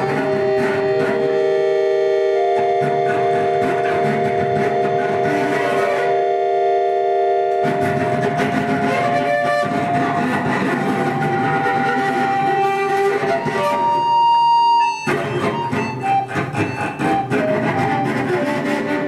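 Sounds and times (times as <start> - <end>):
button accordion: 0.0 - 19.0
lap guitar: 0.0 - 19.0.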